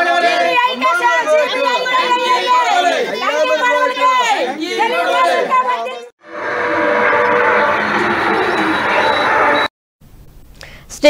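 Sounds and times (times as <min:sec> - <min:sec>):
crowd chanting slogans: 0:00.0 - 0:06.1
crowd chatter: 0:00.0 - 0:06.1.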